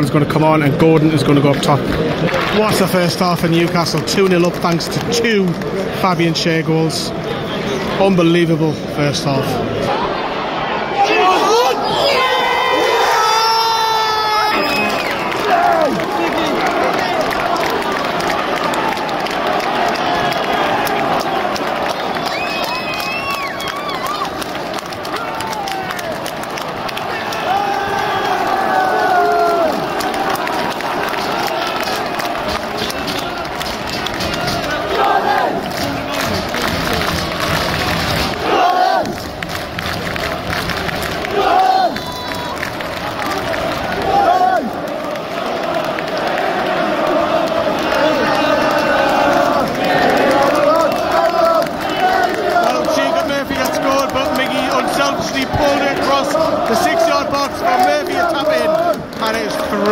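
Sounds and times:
crowd chanting and shouting: 0.0s - 59.9s
close loud shouts: 10.8s - 17.8s, 26.9s - 33.5s, 41.2s - 43.4s.

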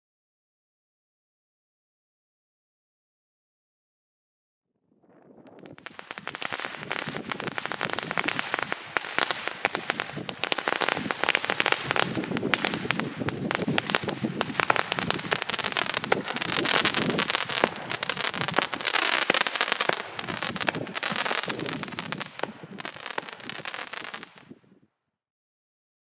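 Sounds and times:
fireworks crackling and popping: 5.0s - 24.6s.

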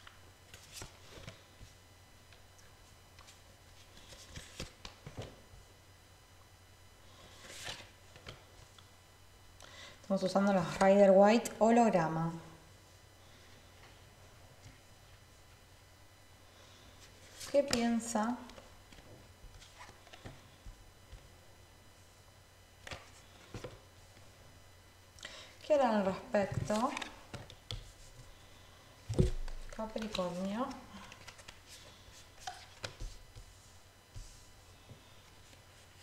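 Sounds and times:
low room hum: 0.0s - 36.0s.

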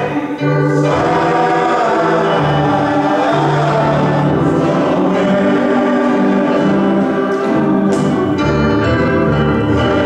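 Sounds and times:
men's choir singing gospel: 0.0s - 10.0s.

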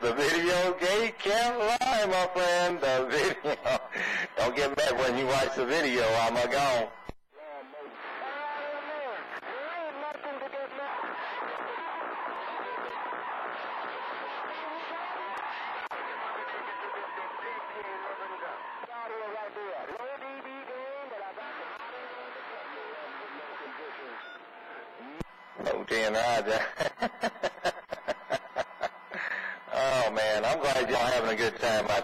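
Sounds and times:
garbled radio voices: 0.0s - 32.0s.

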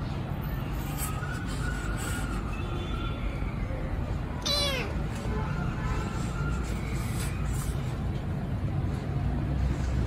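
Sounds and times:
kitten meowing: 4.4s - 5.1s.

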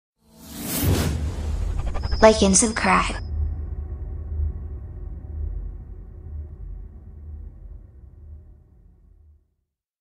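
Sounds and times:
whoosh sound effect: 0.4s - 3.2s
deep bass drone: 0.8s - 9.5s.

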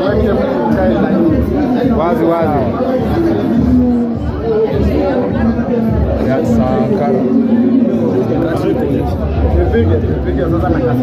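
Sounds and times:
people talking and chattering: 0.0s - 11.0s.

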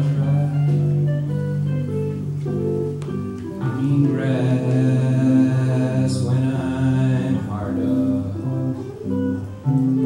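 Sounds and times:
guitar picking: 0.0s - 10.0s.

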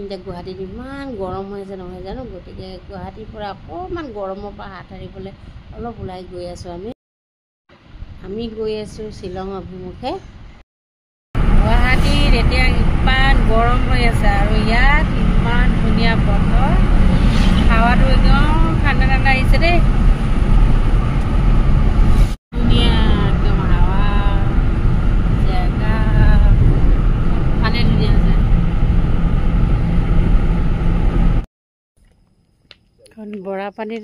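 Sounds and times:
woman talking: 0.0s - 7.0s, 8.2s - 10.2s, 11.6s - 16.8s, 17.6s - 19.8s, 22.6s - 24.5s, 25.4s - 26.7s, 27.6s - 28.4s, 33.0s - 34.0s
car road and wind noise: 7.8s - 10.5s, 11.4s - 31.4s.

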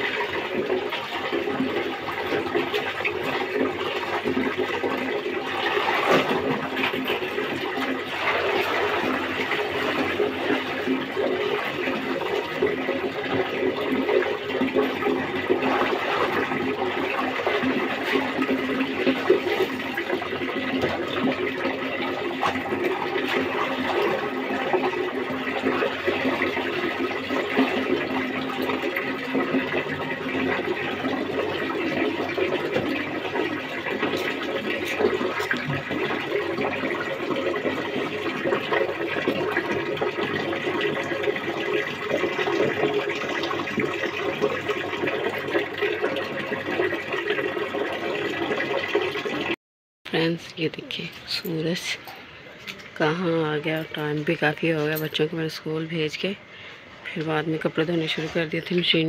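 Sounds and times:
water pouring from tap: 0.0s - 49.6s
clothes splashing in water: 4.9s - 11.2s, 14.6s - 37.1s.

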